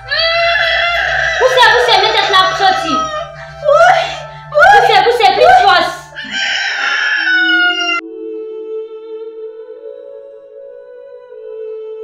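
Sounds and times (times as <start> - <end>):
rooster crowing: 0.1 - 1.7, 6.1 - 8.1.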